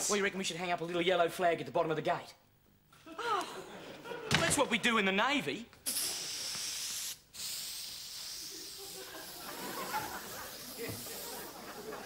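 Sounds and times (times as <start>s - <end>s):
aerosol spray can hissing: 5.8s - 12.0s.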